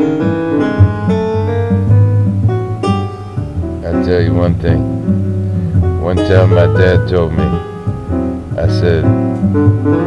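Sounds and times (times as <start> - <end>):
keyboard melody: 0.0 - 10.0
steady bass line: 0.0 - 10.0.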